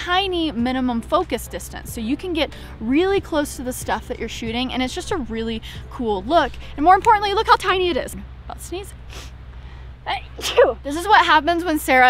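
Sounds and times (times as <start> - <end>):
breathy build-up: 2.5 - 2.8, 5.6 - 7.0, 8.0 - 10.8
woman sneezing: 10.1 - 10.8.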